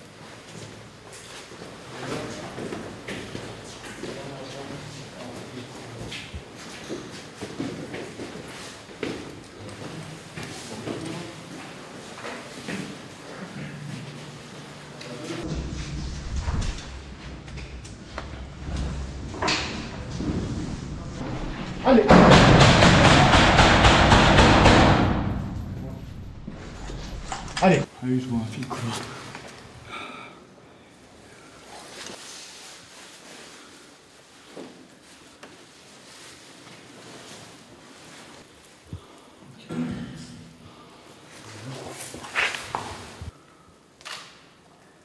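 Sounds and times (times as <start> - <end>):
loud harsh noise: 15.4 - 27.8
knocks and thuds: 15.5 - 27.6.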